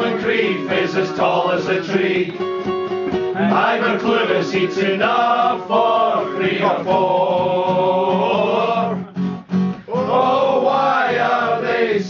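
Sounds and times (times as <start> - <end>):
men singing: 0.0 - 2.4, 3.4 - 9.1, 9.9 - 12.0
acoustic guitar strumming chords: 0.0 - 12.0.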